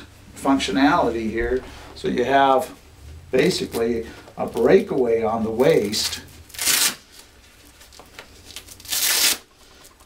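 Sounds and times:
velcro tearing rip: 5.7 - 7.3, 7.9 - 9.5.

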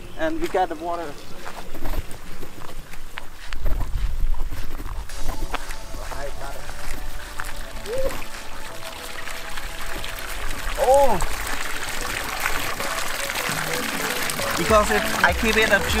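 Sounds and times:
footsteps on grass: 0.0 - 10.0
wind on microphone: 1.6 - 7.2.

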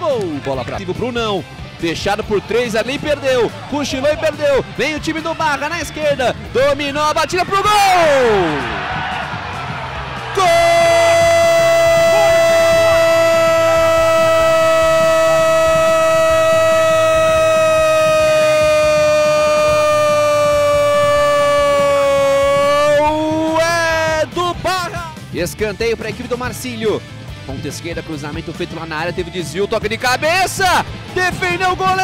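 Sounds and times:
commentator's long goal cry: 10.4 - 23.0.

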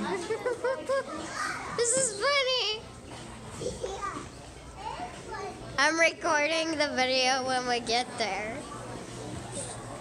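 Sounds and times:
background chatter: 0.0 - 10.0
faint children's voices: 0.0 - 10.0.

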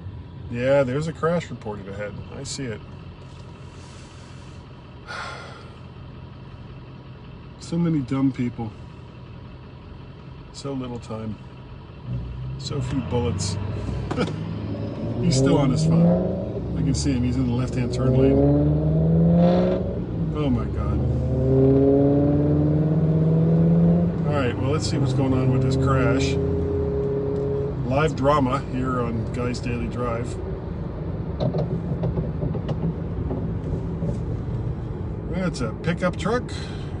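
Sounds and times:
car road and engine rumble: 0.0 - 37.0
person breathing out: 3.6 - 5.8, 36.5 - 37.0.

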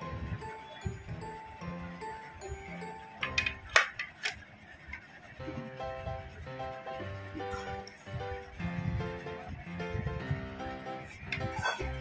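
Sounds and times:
background music: 0.0 - 4.3, 5.3 - 12.0
sharp plastic clicks and knocks: 3.2 - 5.1.

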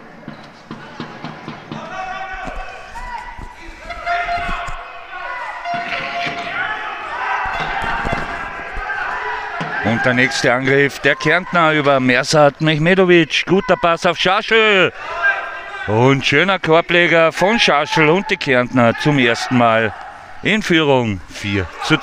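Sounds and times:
players calling out: 0.6 - 22.0.

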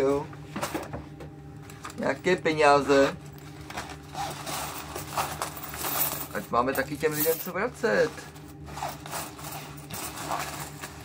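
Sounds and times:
coins clinking: 3.2 - 11.0.

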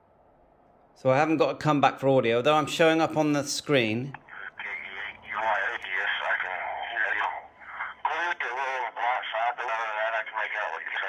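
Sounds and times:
person speaking over radio: 4.0 - 11.0.

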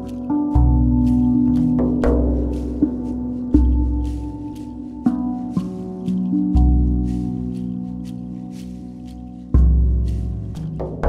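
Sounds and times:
deep drum beat: 0.0 - 11.0
steel tongue drum notes ringing: 0.0 - 11.0.

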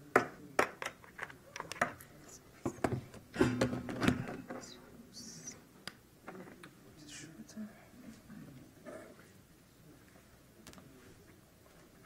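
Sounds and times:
low hum of a voice: 4.2 - 11.5.

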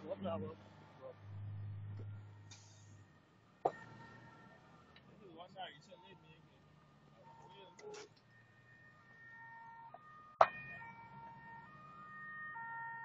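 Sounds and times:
faint emergency siren: 1.1 - 13.0.

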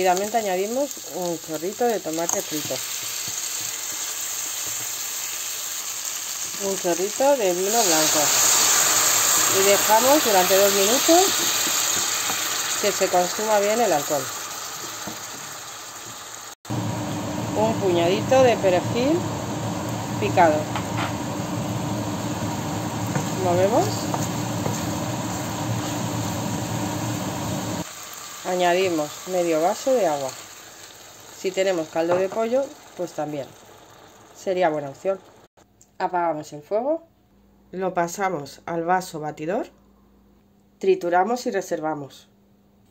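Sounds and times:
vegetables sizzling in oil: 0.0 - 35.5
rushing kitchen noise: 16.7 - 27.8.

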